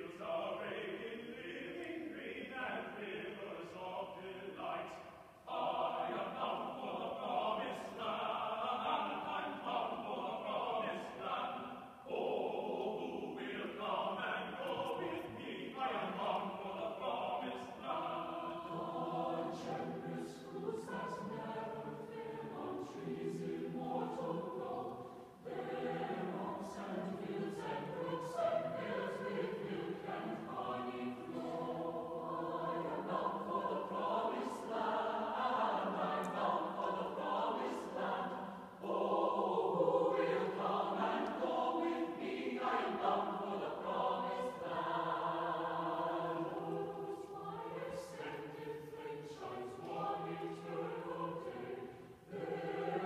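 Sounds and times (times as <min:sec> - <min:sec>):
choir singing unaccompanied: 0:00.0 - 0:53.0.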